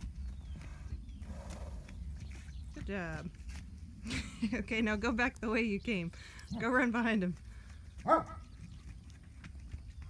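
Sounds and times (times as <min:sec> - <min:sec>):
dog barking: 0:08.0 - 0:08.4.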